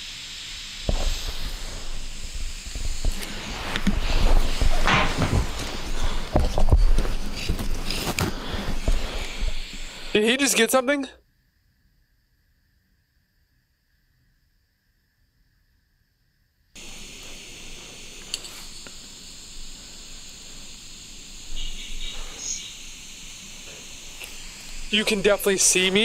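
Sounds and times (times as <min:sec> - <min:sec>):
recording playback hiss: 0:00.0 - 0:26.0.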